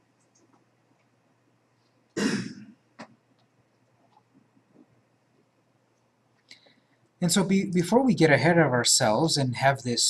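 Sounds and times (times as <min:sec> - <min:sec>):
man coughing: 0:02.2 - 0:02.7.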